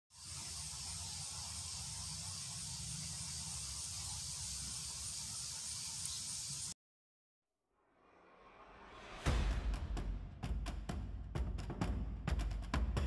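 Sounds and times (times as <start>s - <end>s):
steady high hiss: 0.1s - 6.8s.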